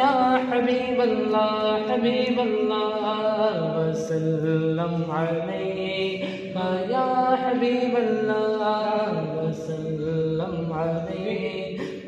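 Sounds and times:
man singing unaccompanied: 0:00.0 - 0:12.0
singer breathing: 0:06.2 - 0:06.6, 0:11.7 - 0:12.0.

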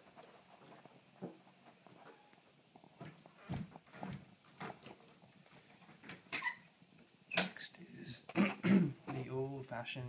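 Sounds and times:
faint footsteps indoors: 0:00.0 - 0:07.0.

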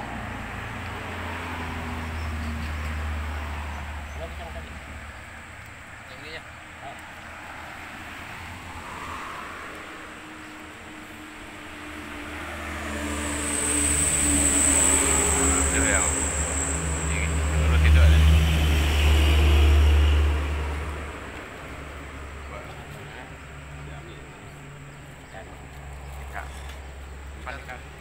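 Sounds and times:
vehicle engine passing by: 0:00.0 - 0:05.5, 0:06.1 - 0:28.0.

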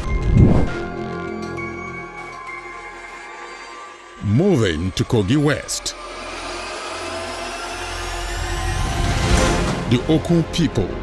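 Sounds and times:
steady whirring: 0:02.4 - 0:09.9.

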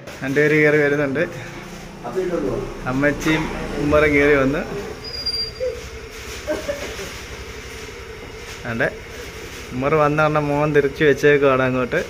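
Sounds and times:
scooter engine running: 0:00.0 - 0:12.0
thin high squeal: 0:05.0 - 0:06.7.

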